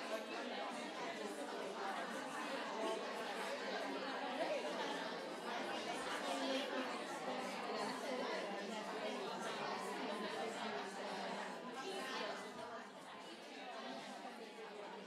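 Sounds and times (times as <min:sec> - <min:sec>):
hubbub of overlapping voices: 0:00.0 - 0:15.0.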